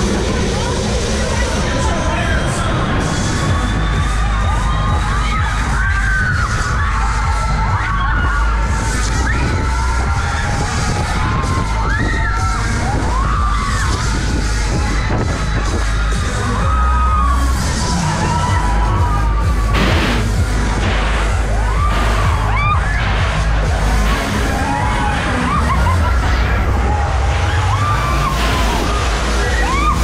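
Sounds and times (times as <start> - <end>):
loud ride music with heavy bass: 0.0 - 30.0
riders screaming and yelling: 0.0 - 30.0
burst of noise: 17.3 - 30.0.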